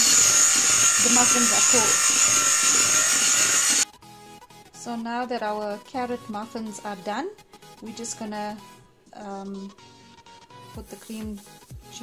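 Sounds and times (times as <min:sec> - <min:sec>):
electric hand mixer whining: 0:00.0 - 0:03.8.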